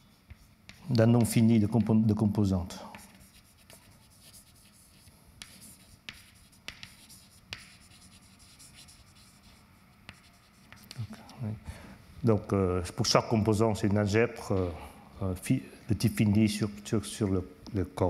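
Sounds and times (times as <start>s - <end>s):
chalk scratching on blackboard: 0.0s - 2.0s, 2.9s - 11.0s
chalk tapping on blackboard: 0.2s - 2.2s, 2.8s - 11.0s.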